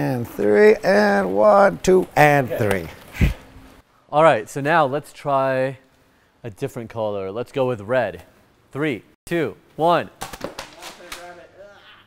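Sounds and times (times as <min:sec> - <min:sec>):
scuffs and knocks of people moving: 0:00.0 - 0:03.8.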